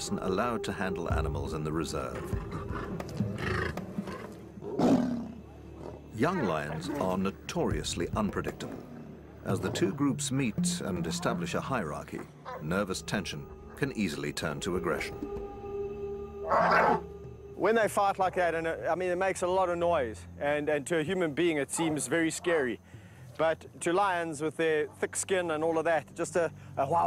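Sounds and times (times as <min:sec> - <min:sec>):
young lions snarling: 0:02.4 - 0:07.2, 0:16.4 - 0:17.0
music drone: 0:10.0 - 0:19.6.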